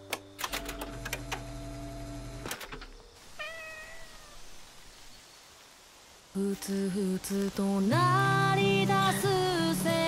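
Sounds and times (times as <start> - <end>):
cat meowing: 3.3 - 4.5.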